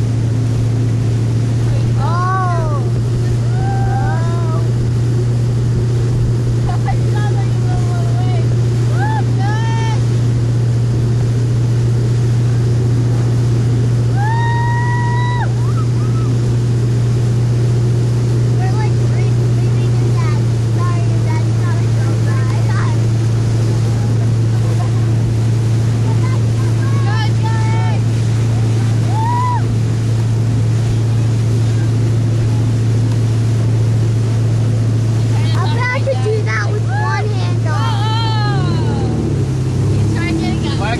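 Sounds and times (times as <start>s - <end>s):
motorboat engine drone: 0.0s - 40.9s
water rushing past hull: 0.0s - 40.9s
people shouting: 29.0s - 29.7s, 37.8s - 39.3s.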